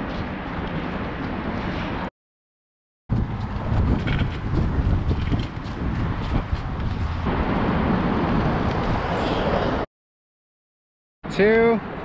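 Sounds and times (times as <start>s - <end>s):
boards rolling on asphalt: 3.1s - 9.8s
wind on microphone: 3.1s - 9.9s.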